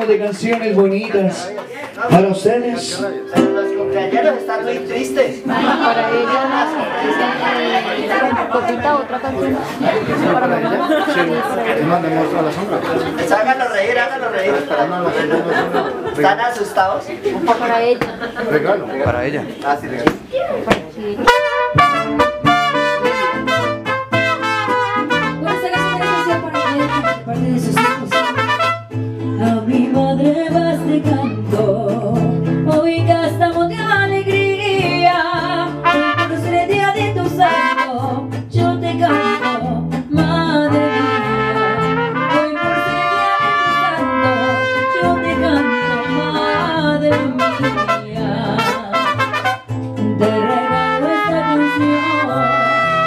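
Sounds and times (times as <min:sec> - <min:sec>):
strummed guitars: 0:00.0 - 0:16.2, 0:20.0 - 0:53.0
trumpets playing melody: 0:21.2 - 0:29.0, 0:35.8 - 0:36.6, 0:37.4 - 0:38.3, 0:39.0 - 0:39.9, 0:40.7 - 0:53.0.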